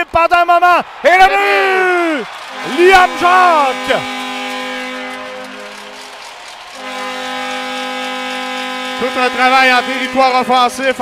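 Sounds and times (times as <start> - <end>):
arena goal horn: 2.4 - 11.0.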